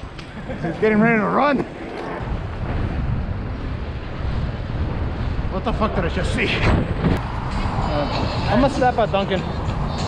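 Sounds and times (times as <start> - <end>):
road noise: 0.0 - 10.0
wind rumbling on microphone: 0.0 - 10.0.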